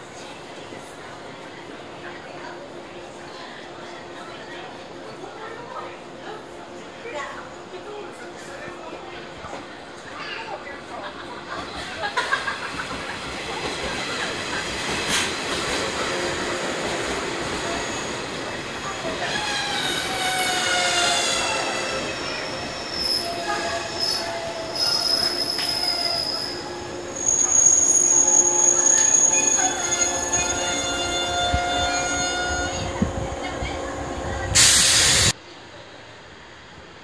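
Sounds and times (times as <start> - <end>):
train rolling over rails: 10.8 - 35.4
high brake squeal: 19.2 - 33.0.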